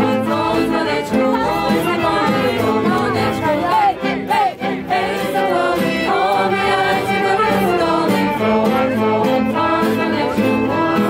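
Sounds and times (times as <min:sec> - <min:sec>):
acoustic guitar: 0:00.0 - 0:11.0
group singing in chorus: 0:00.0 - 0:11.0
violin: 0:00.0 - 0:11.0.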